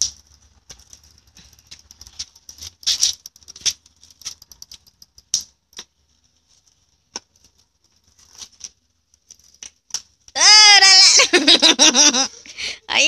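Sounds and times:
bicycle clicking and rattling: 0.0 - 10.4.

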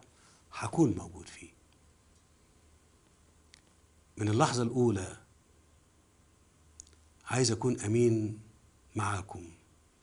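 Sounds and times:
man speaking: 0.5 - 1.6, 4.2 - 5.3, 7.3 - 9.6
mouth click: 6.8 - 7.0.

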